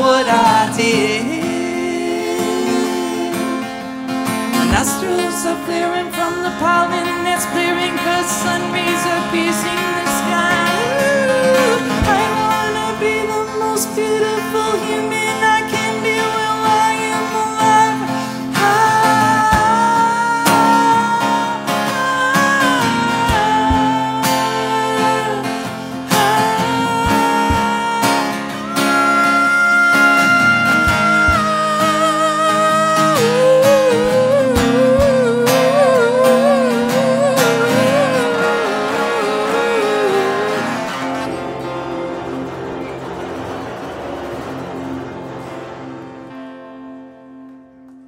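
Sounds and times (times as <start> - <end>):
solo acoustic guitar: 0.0 - 48.0.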